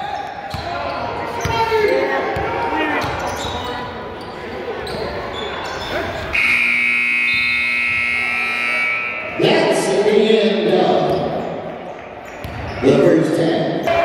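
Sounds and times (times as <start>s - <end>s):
voices echoing: 0.0s - 14.0s
scoreboard buzzer horn: 6.3s - 9.3s.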